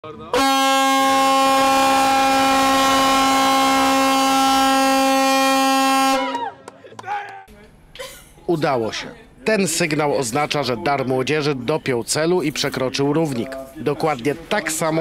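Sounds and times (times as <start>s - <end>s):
ship foghorn blast: 0.3s - 6.4s.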